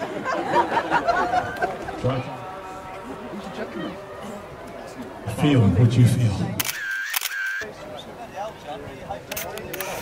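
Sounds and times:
faint chatter of people: 0.0 - 10.0
camera beeps: 6.6 - 7.7
camera shutter clicking: 6.6 - 7.7, 9.3 - 10.0.

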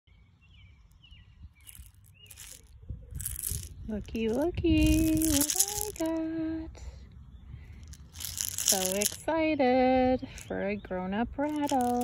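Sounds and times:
birds chirping faintly: 0.1 - 12.0
shell rattle shaken: 1.6 - 6.2, 7.8 - 9.3, 11.4 - 12.0.

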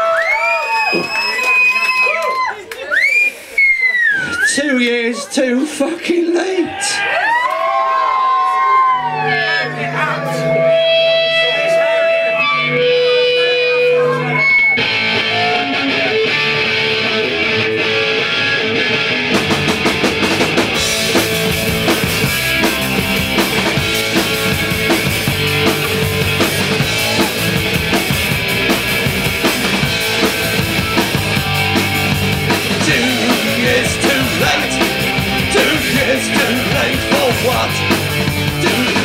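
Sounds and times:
drums: 0.0 - 4.8, 10.2 - 39.0
bass guitar: 8.9 - 39.0
ringing electric guitar notes: 9.1 - 38.6
distorted guitar riff: 9.2 - 39.0.

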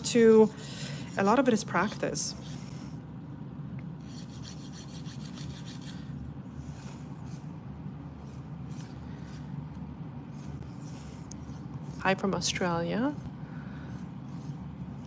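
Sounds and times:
nail dust collector fan hum: 0.0 - 15.0
nail file rasping on fingernail: 4.0 - 6.0.

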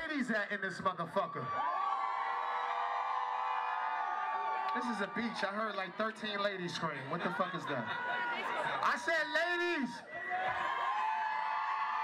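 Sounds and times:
crowd of women screaming: 1.3 - 6.4, 10.1 - 12.0.

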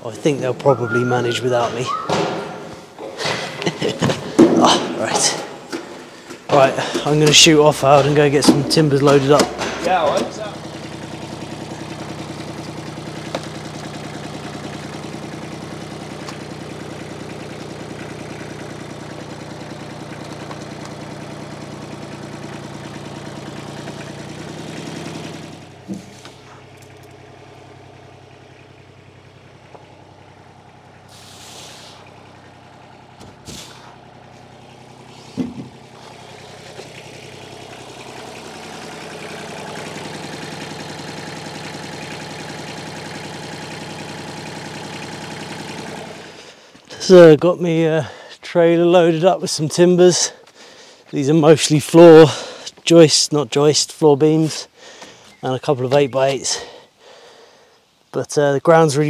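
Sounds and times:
tractor engine running: 0.0 - 57.0
short hiss: 31.1 - 32.1, 33.4 - 34.0.

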